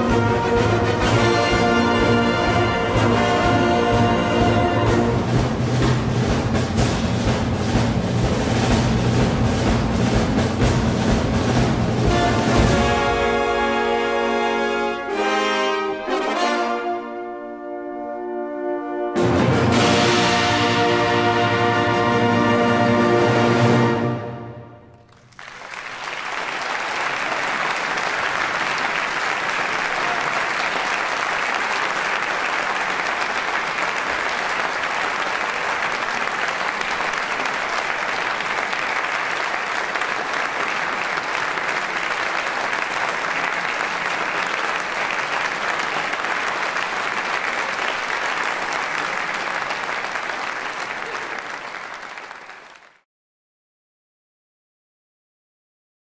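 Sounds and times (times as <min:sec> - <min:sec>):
audience applauding: 0:24.9 - 0:53.0.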